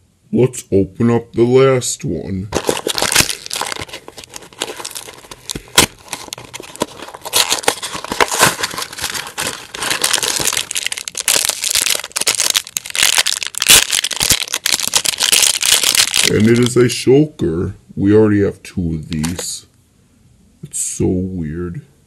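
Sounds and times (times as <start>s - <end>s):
packaging crinkling and tearing: 2.5s - 16.9s, 19.1s - 19.5s.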